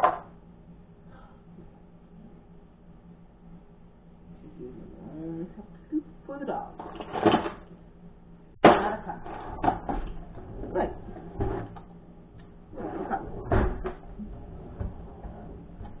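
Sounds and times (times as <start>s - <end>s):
kitchen clatter and knocks: 8.6s - 11.8s, 13.1s - 14.1s.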